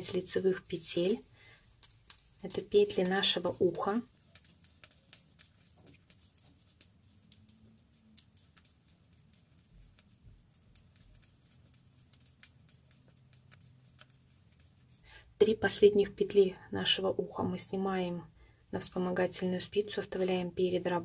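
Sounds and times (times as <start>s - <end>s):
knitting needles clicking: 0.0s - 15.0s.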